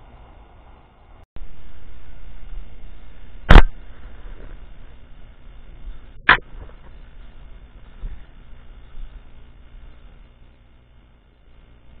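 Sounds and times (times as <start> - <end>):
handheld camera rumble and rustle: 2.4 - 12.0
sharp crack: 3.5 - 3.9.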